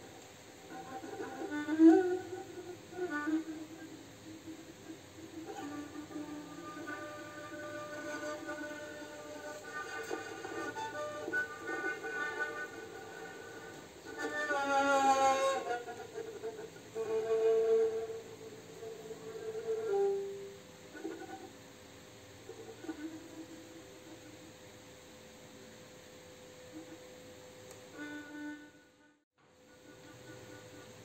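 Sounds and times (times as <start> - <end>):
bowed lyra melody: 0.7 - 21.5.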